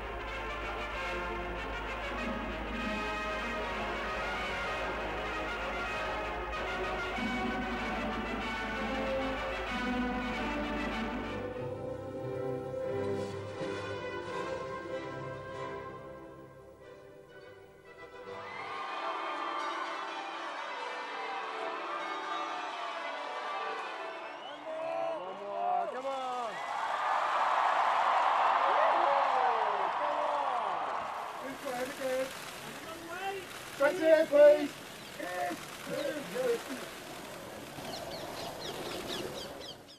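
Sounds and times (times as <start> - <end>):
steady background hiss: 26.8 - 39.9
small birds chirping: 31.7 - 39.9.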